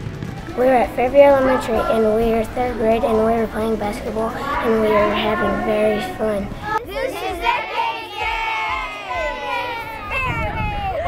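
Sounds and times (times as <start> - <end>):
children shouting and cheering: 0.5 - 11.0.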